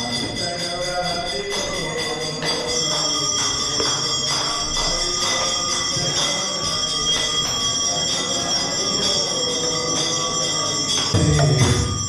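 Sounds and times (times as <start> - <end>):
hand bells ringing: 0.0 - 12.0
hand cymbals ringing: 0.0 - 12.0.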